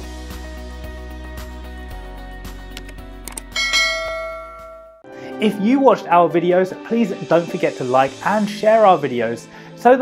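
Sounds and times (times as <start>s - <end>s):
background music: 0.0s - 10.0s
bell-like chime: 3.6s - 5.1s.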